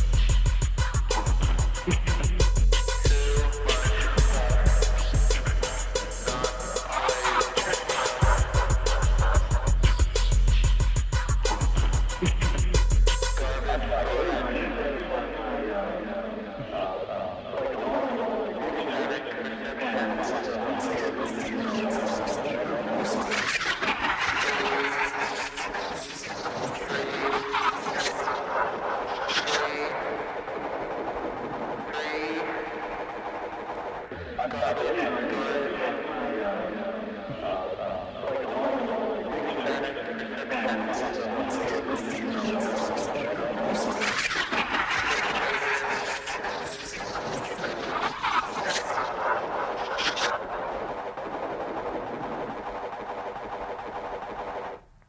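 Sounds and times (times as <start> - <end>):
electronic breakbeat music: 0.0 - 16.0, 40.6 - 54.8
voice-like sampled sounds: 0.0 - 54.8
dense noisy texture: 3.0 - 10.1, 13.4 - 54.9.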